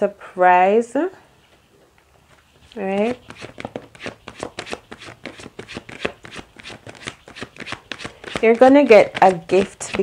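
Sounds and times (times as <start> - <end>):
cards being shuffled: 2.2 - 10.0.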